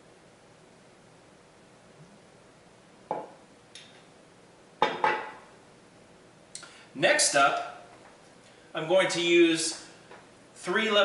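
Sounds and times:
knock: 3.1 - 3.4.

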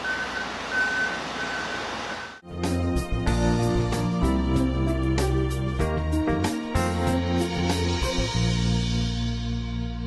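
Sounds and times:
reversing alarm beeping: 0.0 - 2.4.

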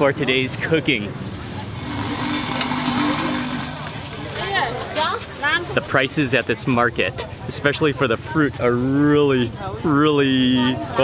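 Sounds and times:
vehicle passing on street: 0.1 - 5.9.

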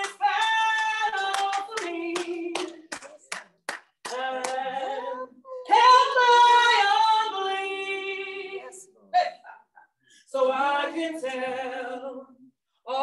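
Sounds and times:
woman singing gospel song: 0.0 - 3.1, 4.0 - 9.5, 10.2 - 13.0
handclaps: 0.0 - 4.7.

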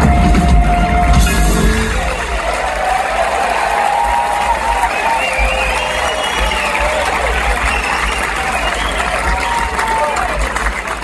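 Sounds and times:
audience cheering and applauding: 0.0 - 11.0
gliding whistles: 4.8 - 9.2.

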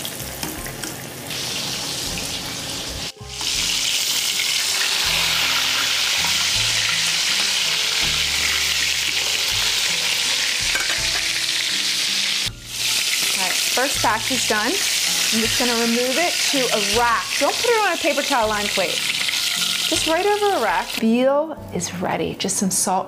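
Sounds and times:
cutlets sizzling in oil: 0.0 - 21.0.

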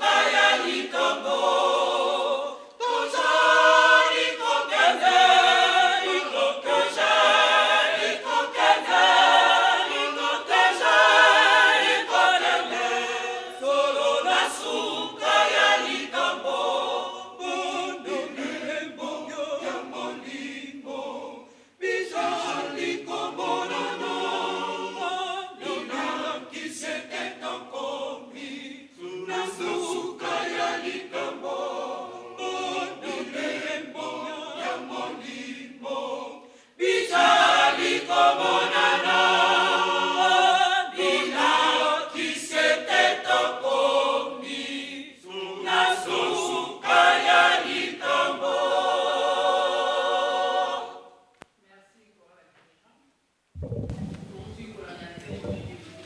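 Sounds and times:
mixed choir singing unaccompanied: 0.0 - 51.3.

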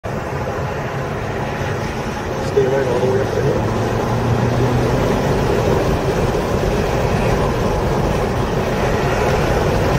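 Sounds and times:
road noise: 0.0 - 9.9
car engine accelerating: 0.1 - 9.9.

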